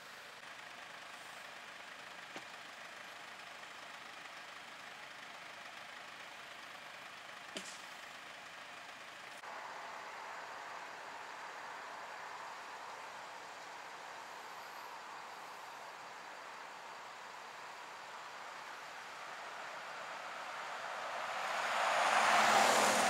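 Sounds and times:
faint vehicle engine noise: 0.0s - 23.0s.

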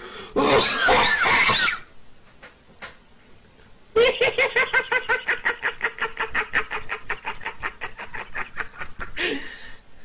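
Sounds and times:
man laughing hysterically: 4.0s - 9.5s.

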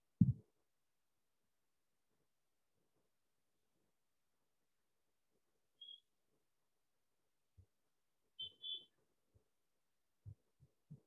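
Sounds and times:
short high chirps: 5.8s - 6.0s, 8.4s - 8.9s.

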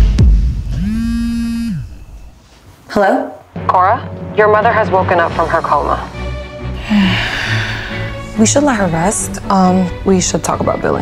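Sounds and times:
deep bass thump: 0.0s - 0.9s
smartphone vibrating on tabletop: 0.8s - 2.1s.

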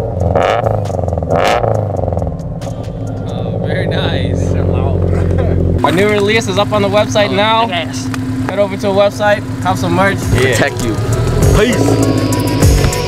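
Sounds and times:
car engine revving and idling: 0.0s - 13.0s.

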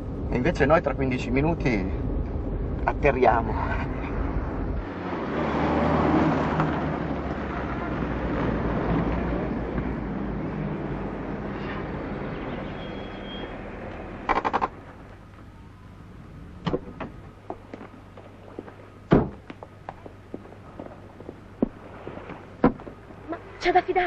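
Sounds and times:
car driving past: 4.0s - 14.3s.

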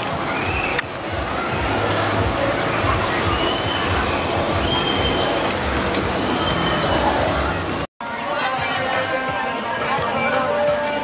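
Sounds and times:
busy outdoor ambience: 0.0s - 11.0s.

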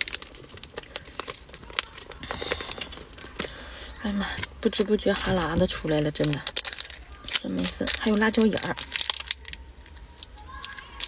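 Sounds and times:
plastic packet crinkling: 0.0s - 11.0s.

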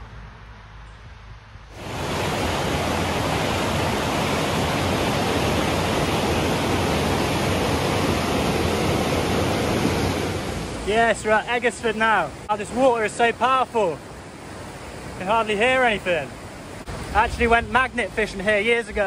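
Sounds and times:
river rushing over rocks and weir: 1.7s - 19.0s.

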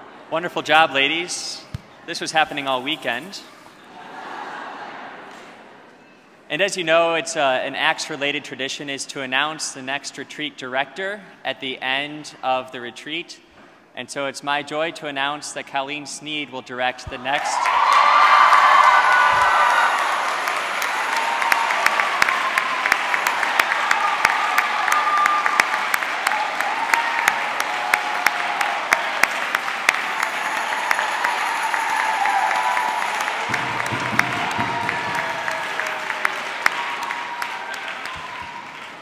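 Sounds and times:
crowd applauding: 17.3s - 39.0s.

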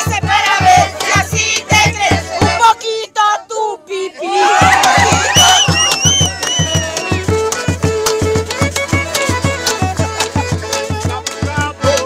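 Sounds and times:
group of voices singing: 0.0s - 7.3s
strummed guitars: 4.5s - 12.0s
hand clapping: 4.8s - 12.0s.

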